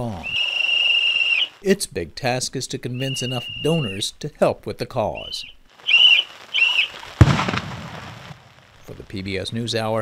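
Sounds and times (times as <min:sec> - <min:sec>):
explosion blast with rumbling tail: 0:07.2 - 0:08.5.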